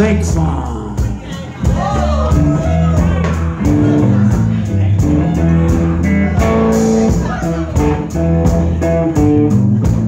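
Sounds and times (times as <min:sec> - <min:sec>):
bass guitar: 0:00.0 - 0:10.0
steady drum beat: 0:00.0 - 0:10.0
electric guitar: 0:03.2 - 0:10.0.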